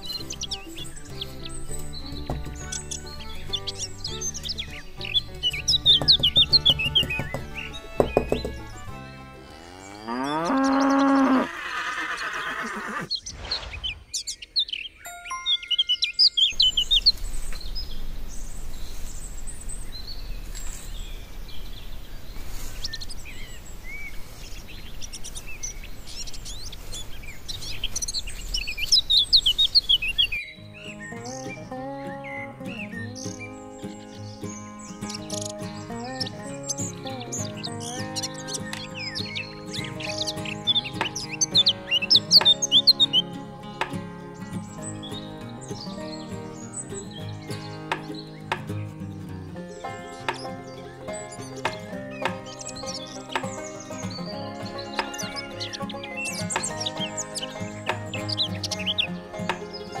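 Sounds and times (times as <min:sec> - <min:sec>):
background music with held tones: 0:00.0 - 0:11.4, 0:15.0 - 0:18.4, 0:30.3 - 1:00.0
birds chirping: 0:00.0 - 1:00.0
cow mooing: 0:09.4 - 0:13.1.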